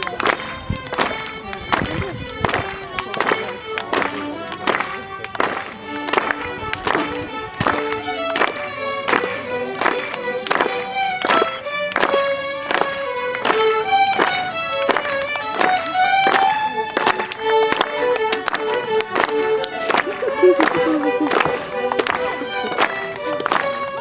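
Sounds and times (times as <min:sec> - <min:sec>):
fiddles playing folk dance tune: 0:00.0 - 0:24.0
steady beat: 0:19.8 - 0:22.7.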